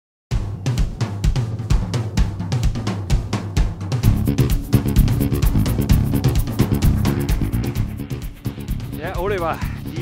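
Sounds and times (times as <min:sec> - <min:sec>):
drum kit playing steady beat: 0:00.3 - 0:10.0.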